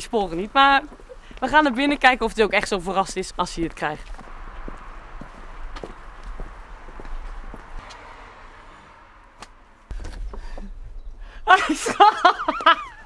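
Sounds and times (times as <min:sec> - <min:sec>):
footsteps on paved path: 0:00.0 - 0:08.0.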